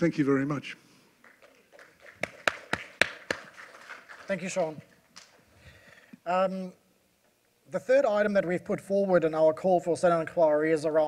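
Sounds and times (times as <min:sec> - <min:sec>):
hand claps: 0:01.2 - 0:05.4.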